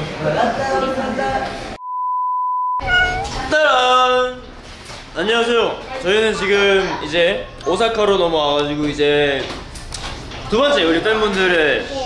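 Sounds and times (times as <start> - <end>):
electronic test-tone beep: 1.8 - 3.3
short high-pitched call: 2.8 - 3.4.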